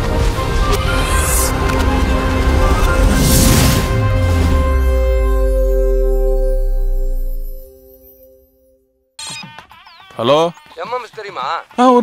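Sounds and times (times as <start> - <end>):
warbling pitched sounds: 0.0 - 8.7
electronic logo jingle: 0.2 - 9.3.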